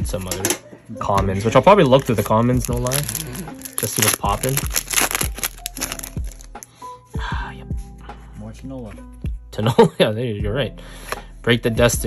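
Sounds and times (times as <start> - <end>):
background music: 0.0 - 12.0
foil wrapper crinkling: 1.8 - 6.6
trading cards rustling: 1.8 - 6.7.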